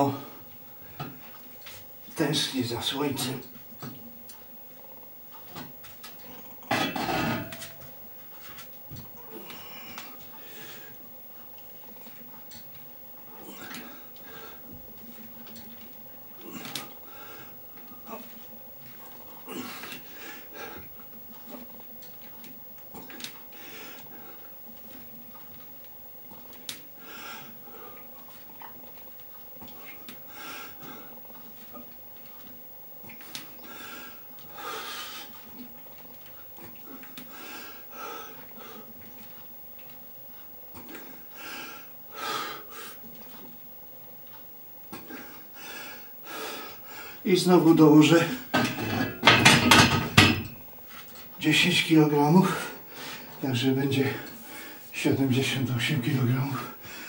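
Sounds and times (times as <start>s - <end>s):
faint steady hum: 0.0s - 57.0s.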